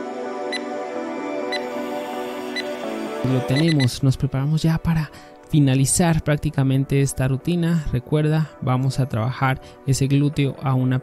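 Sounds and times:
calm synth background music: 0.0s - 11.0s
man speaking: 3.2s - 11.0s.

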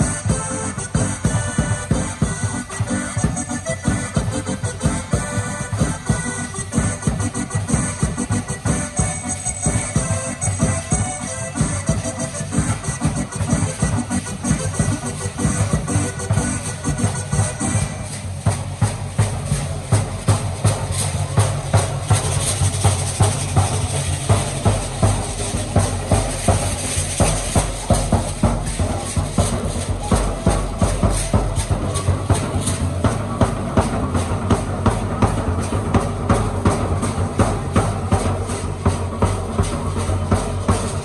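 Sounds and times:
large drum beating: 0.0s - 41.0s.

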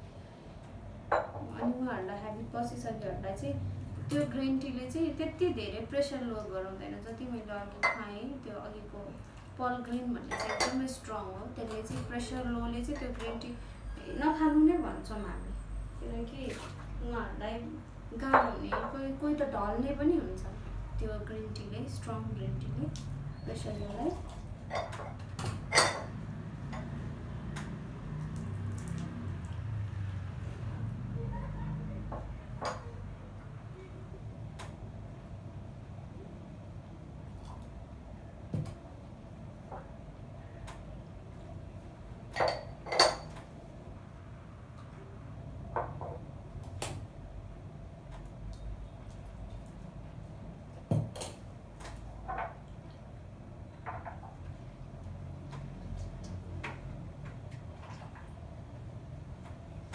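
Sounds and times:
porcelain cups clinking: 42.3s - 43.4s.

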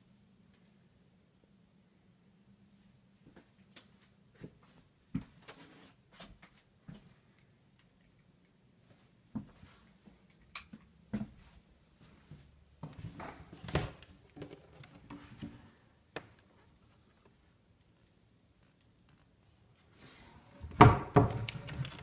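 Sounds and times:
person moving about a room: 0.3s - 1.0s, 2.4s - 22.0s.

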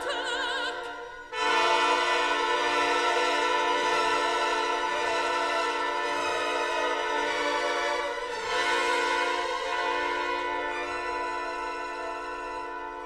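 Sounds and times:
orchestra strings sustained chord: 0.0s - 13.0s.

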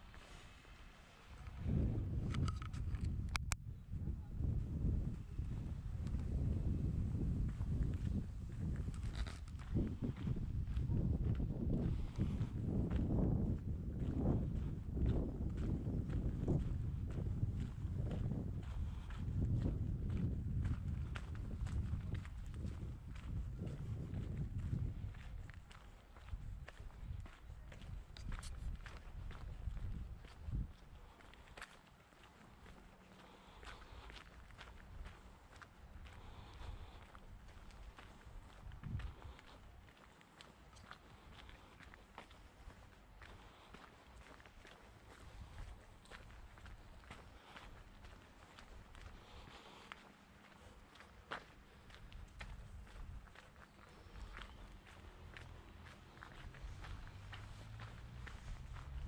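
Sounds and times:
footsteps on pavement: 0.0s - 3.3s, 4.4s - 59.0s.

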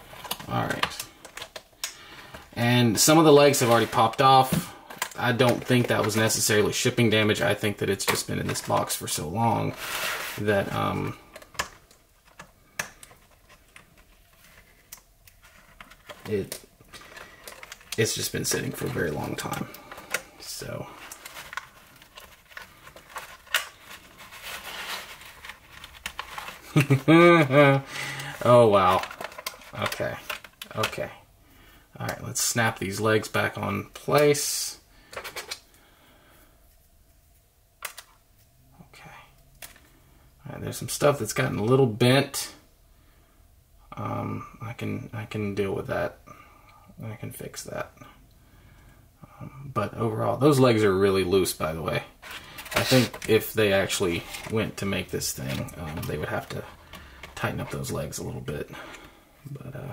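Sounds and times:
faint plastic rustling: 0.0s - 42.6s, 47.2s - 59.9s.

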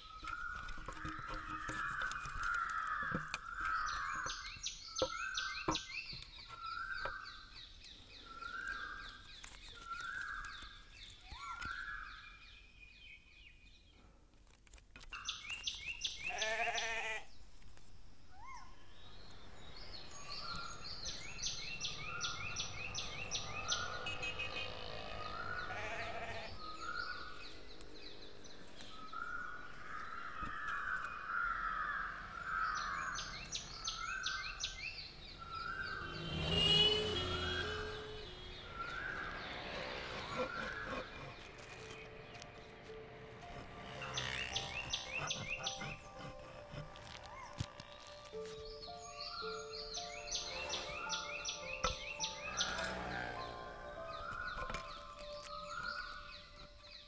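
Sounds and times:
birds chattering: 19.1s - 57.0s.

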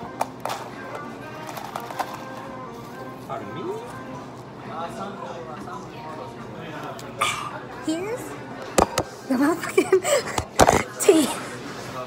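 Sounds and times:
background music: 0.0s - 11.7s.

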